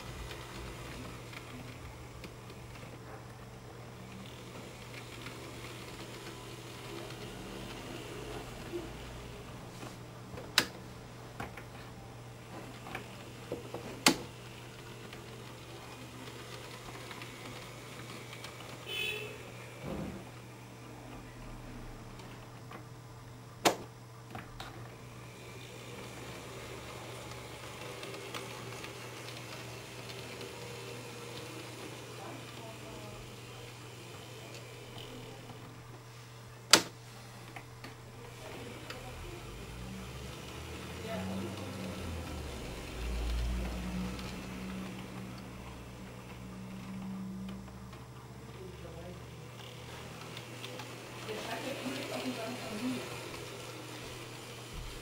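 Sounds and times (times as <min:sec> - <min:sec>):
faint model train motor hum: 0:00.0 - 0:22.8, 0:24.3 - 0:55.0
small wheels ticking over rails: 0:25.6 - 0:35.7, 0:38.3 - 0:47.8, 0:48.8 - 0:55.0.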